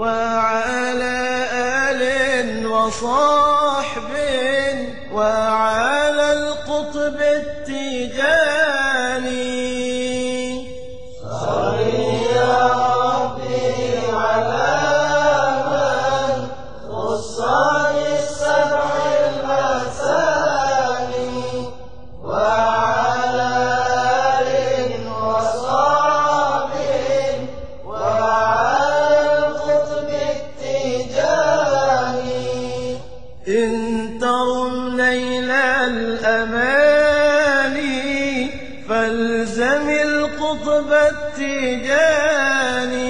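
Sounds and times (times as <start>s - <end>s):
man chanting: 0.0s - 43.0s.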